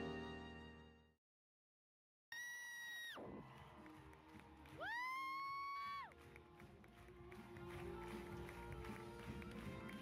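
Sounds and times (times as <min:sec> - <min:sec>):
crowd cheering: 0:03.1 - 0:10.0
woman screaming in excitement: 0:04.8 - 0:06.1.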